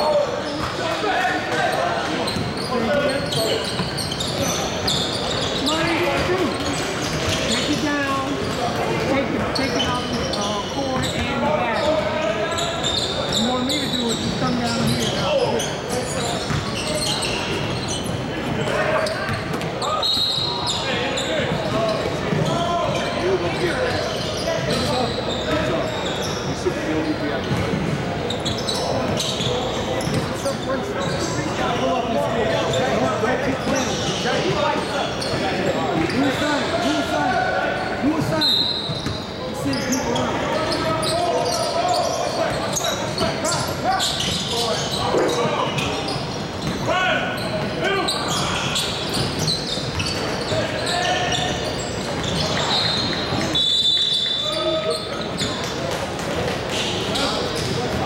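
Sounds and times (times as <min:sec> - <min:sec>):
players' voices echoing: 0:00.0 - 0:58.0.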